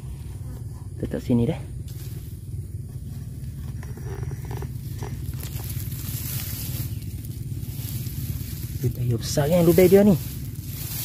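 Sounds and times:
steady low rumble: 0.0s - 11.0s
brushing through wet grass: 4.7s - 11.0s.

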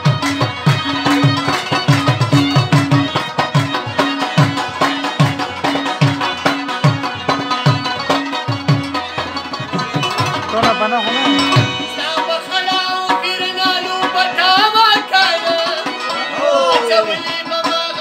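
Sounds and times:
harmonium chords: 0.0s - 18.0s
man singing: 10.5s - 18.0s.

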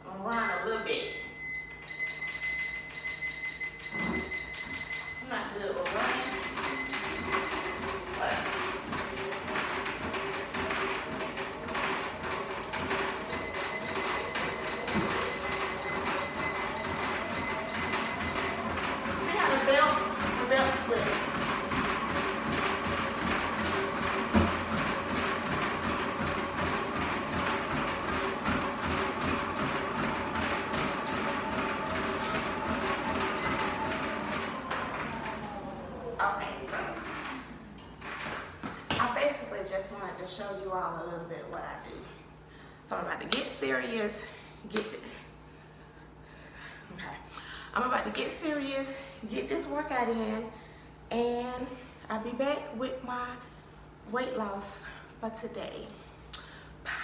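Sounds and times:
treadmill motor humming: 0.1s - 57.0s
footsteps walking on treadmill: 1.2s - 39.5s.

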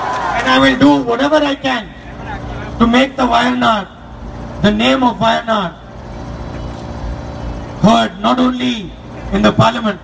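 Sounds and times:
man speaking over loudspeakers: 0.4s - 5.9s, 7.8s - 10.0s.

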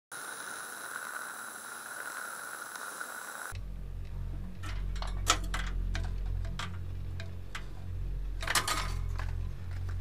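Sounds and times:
television static hiss: 0.1s - 3.6s
low hum: 3.5s - 10.0s.

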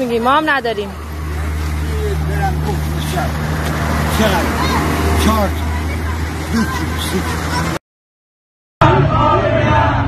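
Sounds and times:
engine running: 0.0s - 7.8s.

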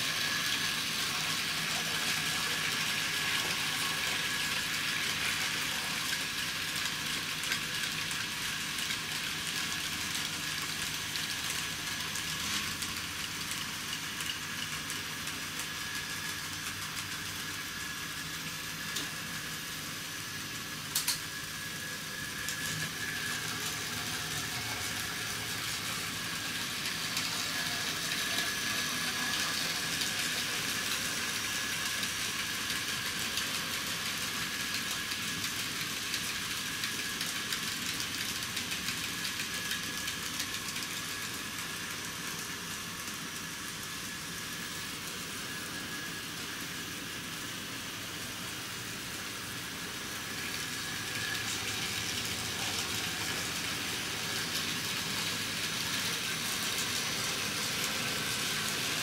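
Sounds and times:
model train motors whirring: 0.0s - 59.0s.

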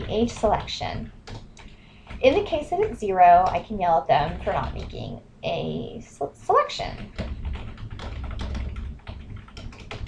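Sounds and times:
typing on a keyboard: 0.0s - 5.0s, 7.0s - 10.0s.

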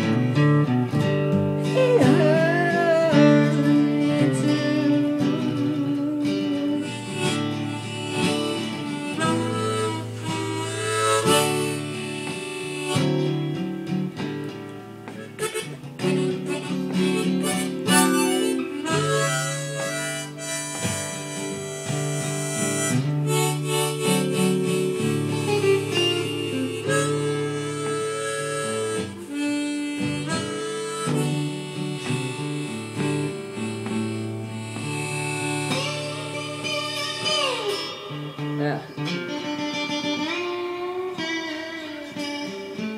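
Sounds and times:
blues harmonica: 0.0s - 42.9s
strummed and plucked guitar: 0.0s - 42.9s.

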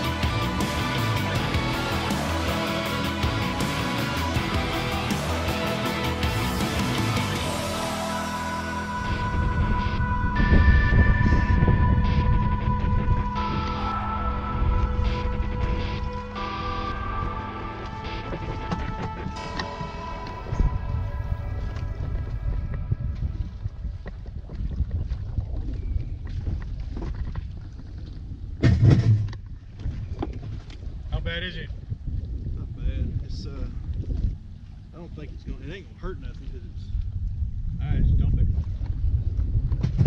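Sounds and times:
music with held notes: 0.0s - 22.8s
wind on microphone: 7.4s - 40.0s
loud thump: 28.6s - 29.4s.

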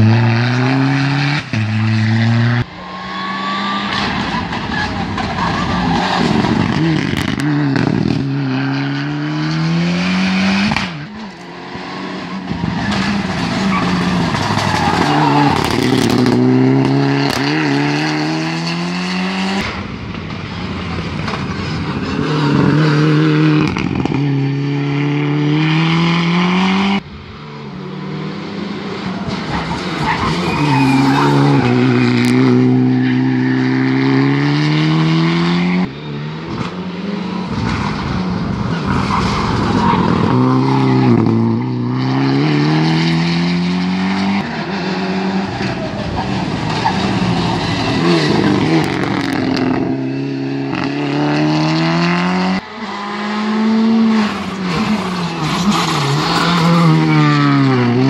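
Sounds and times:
rally car engine revving: 0.0s - 58.0s
tyres squealing: 29.3s - 32.2s.

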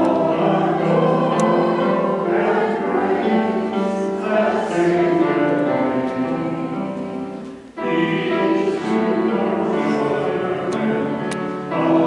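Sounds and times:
congregation singing a hymn: 0.0s - 12.0s
keyboard accompaniment: 0.0s - 12.0s.

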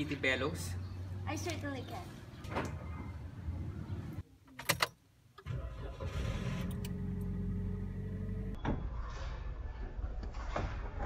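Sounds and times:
car engine starting and idling: 5.4s - 8.6s.

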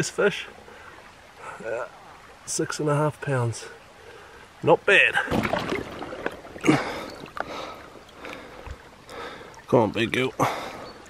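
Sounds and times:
river water splashing: 0.0s - 11.0s.

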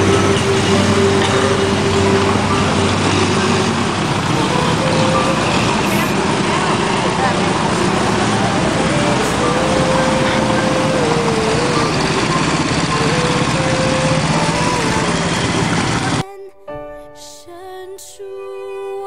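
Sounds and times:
motorcycle engines running: 0.0s - 16.2s
people's voices: 0.0s - 16.5s.

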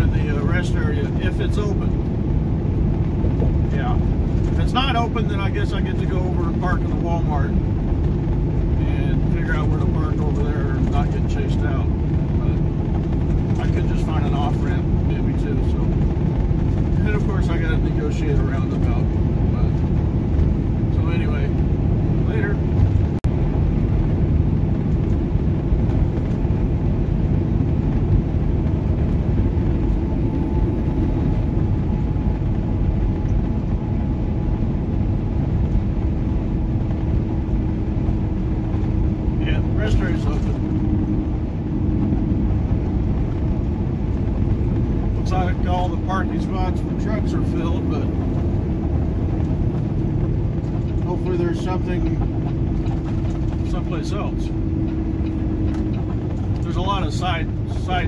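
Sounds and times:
diesel engine drone: 0.0s - 58.0s
tyre and road noise: 0.0s - 58.0s.

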